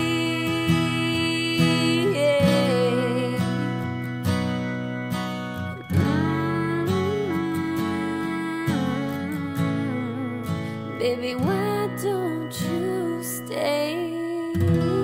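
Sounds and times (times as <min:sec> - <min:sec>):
acoustic guitar country ballad: 0:00.0 - 0:15.0.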